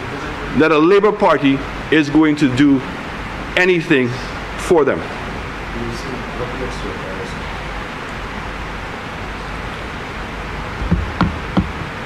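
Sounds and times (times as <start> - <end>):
room noise hiss: 0.0 - 12.0
soft knocks: 10.8 - 12.0.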